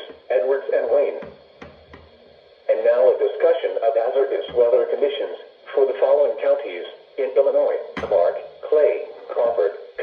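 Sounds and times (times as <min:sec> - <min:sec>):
voice on small radio speaker: 0:00.0 - 0:01.9, 0:02.7 - 0:10.0.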